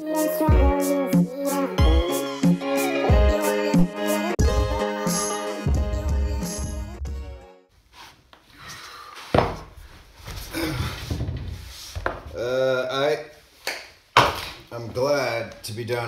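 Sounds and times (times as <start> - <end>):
rustling: 7.8 - 12.4
knocks on wooden floor: 9.4 - 9.7
man groaning: 12.3 - 13.1
man talking: 14.7 - 16.0.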